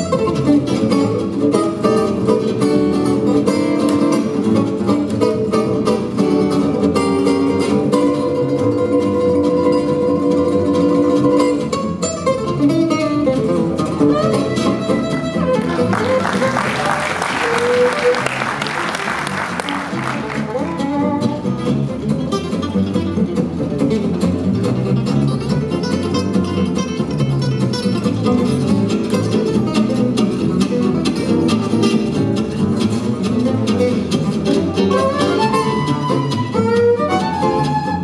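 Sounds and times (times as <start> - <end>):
acoustic guitars playing jazz: 0.0 - 38.0
plucked double bass: 0.0 - 38.0.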